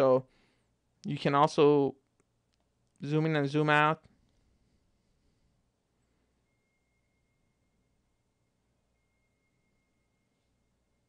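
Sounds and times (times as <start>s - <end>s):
faint low hum: 0.0s - 11.0s
faint high tone: 5.9s - 11.0s.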